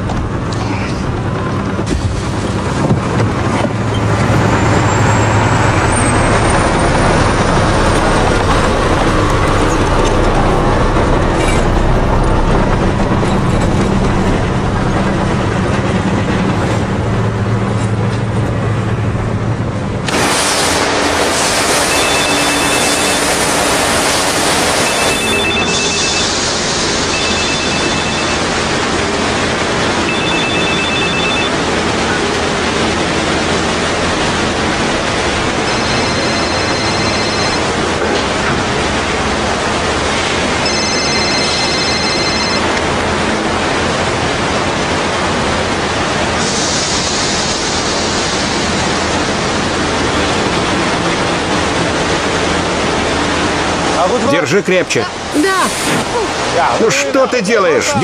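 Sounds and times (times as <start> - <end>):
pressure washer spraying hiss: 20.1 - 27.4, 46.4 - 49.1
mobile phone ringing: 27.1 - 28.4, 30.1 - 31.6, 35.7 - 37.7, 40.6 - 42.6.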